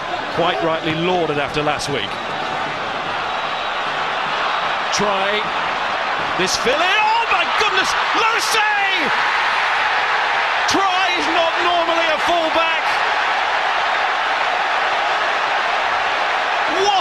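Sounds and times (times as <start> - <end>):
stadium crowd cheering: 0.0 - 17.0.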